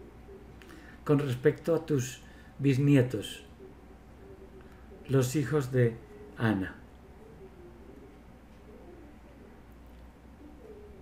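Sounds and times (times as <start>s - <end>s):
steady low hum: 0.0s - 11.0s
low cooing calls: 7.0s - 9.6s.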